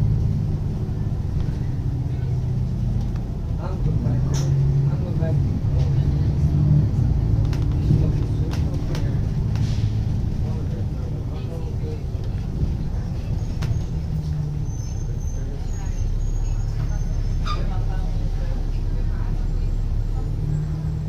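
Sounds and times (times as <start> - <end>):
bus engine low drone: 0.0 - 21.0
road noise: 0.0 - 21.0.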